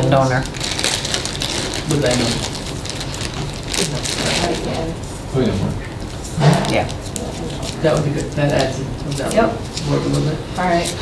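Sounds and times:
steady crackling noise: 0.0s - 11.0s.

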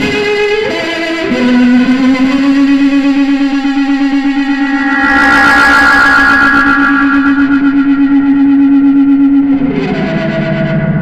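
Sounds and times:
distorted electric guitar note: 3.3s - 9.3s.

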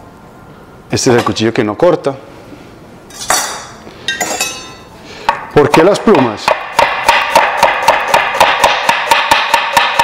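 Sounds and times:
steel knives clinking: 3.1s - 4.9s.

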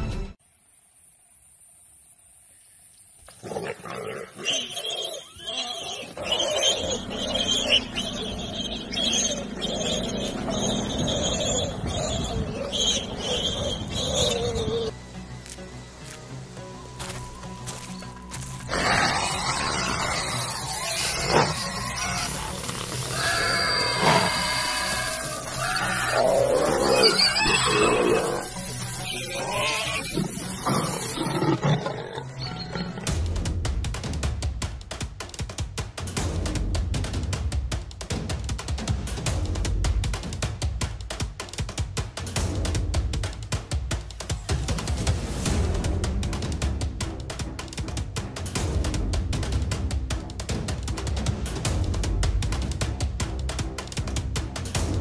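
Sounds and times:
animals growling: 3.3s - 14.9s, 18.7s - 33.2s
high-pitched animal squeals: 4.0s - 14.9s, 18.7s - 33.1s.

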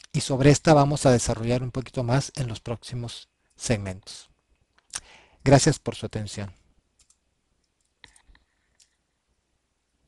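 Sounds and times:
faint computer mouse clicks: 7.0s - 9.0s.

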